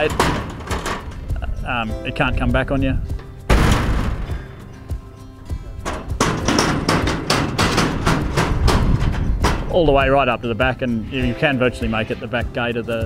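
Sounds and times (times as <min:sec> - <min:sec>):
metal gate clanging shut: 0:00.0 - 0:04.8, 0:05.6 - 0:10.6
metallic knocks and rattles: 0:00.0 - 0:12.6.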